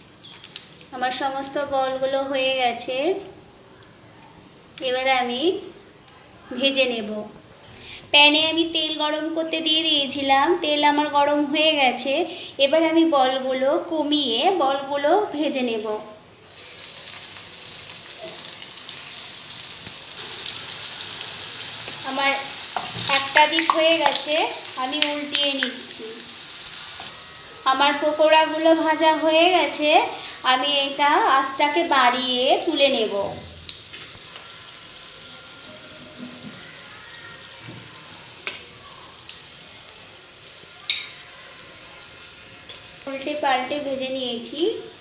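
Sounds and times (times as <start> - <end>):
deep-frying sizzle in oil: 16.4 - 45.0.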